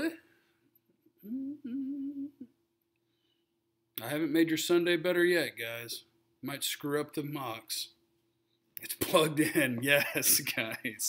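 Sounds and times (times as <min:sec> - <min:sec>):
man humming: 0:01.2 - 0:02.5.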